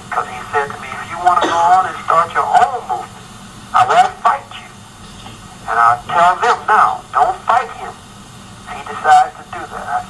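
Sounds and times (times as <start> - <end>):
faint steady hum: 0.0 - 10.0
person talking: 0.2 - 8.0.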